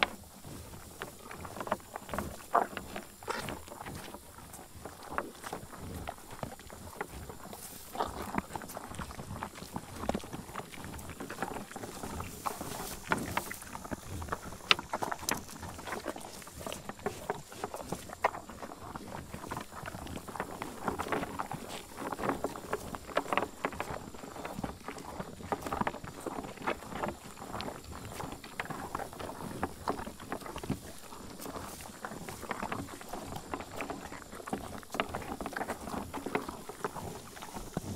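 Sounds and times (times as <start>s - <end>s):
bison chewing and crunching: 0.0s - 37.9s.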